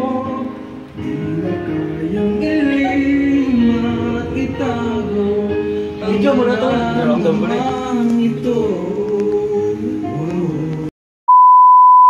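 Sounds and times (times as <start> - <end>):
voices singing: 0.0 - 10.9.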